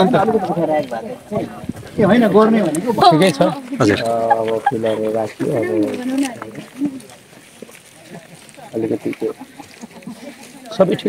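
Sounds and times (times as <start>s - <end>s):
man talking: 2.0s - 6.0s.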